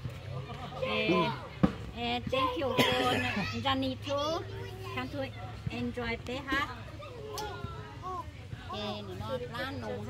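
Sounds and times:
several people talking: 0.0 - 10.0.

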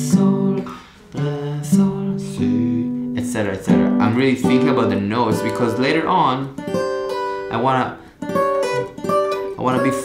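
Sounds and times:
acoustic guitar chords plucked: 0.0 - 10.0.

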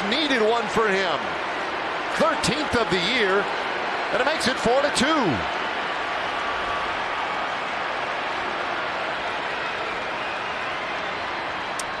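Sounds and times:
applause: 0.0 - 12.0
stadium crowd noise: 0.0 - 12.0.

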